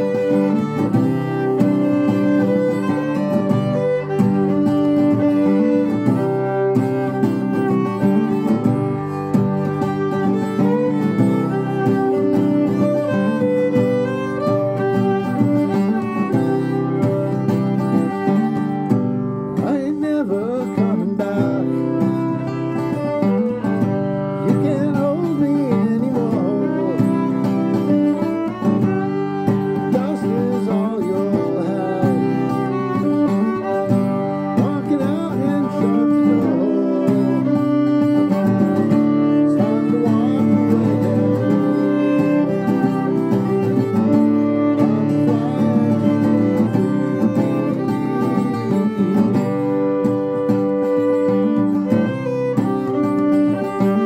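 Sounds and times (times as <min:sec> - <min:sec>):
acoustic guitar: 0:00.0 - 0:54.0
violin melody: 0:00.0 - 0:54.0.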